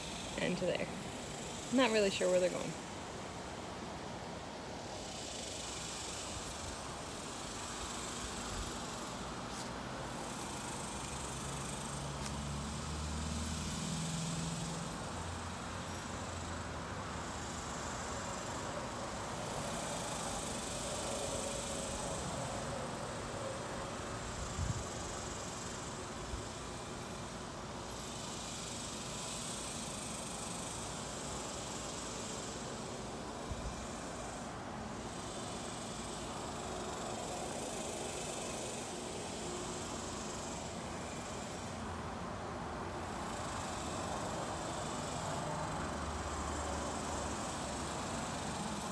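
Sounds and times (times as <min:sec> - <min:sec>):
insect chorus: 0:00.0 - 0:48.9.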